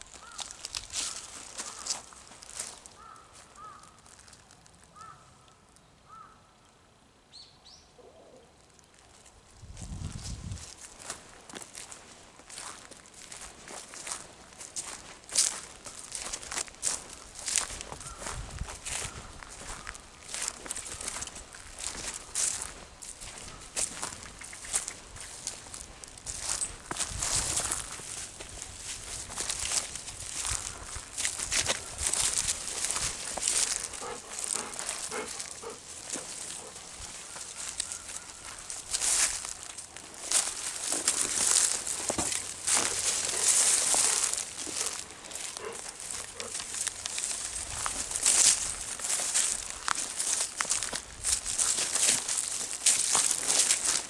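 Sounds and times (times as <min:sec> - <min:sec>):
footsteps on dry leaves and twigs: 0:00.0 - 0:05.2, 0:08.6 - 0:54.0.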